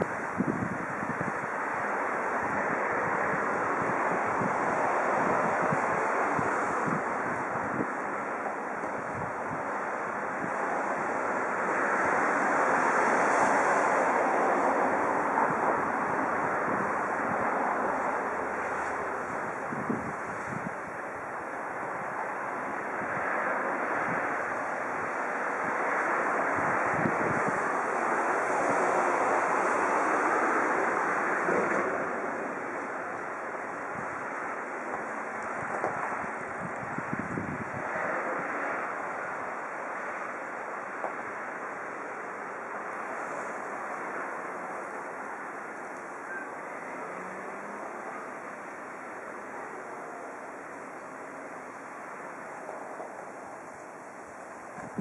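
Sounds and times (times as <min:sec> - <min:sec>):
wind blowing on microphone: 0:00.0 - 0:55.0.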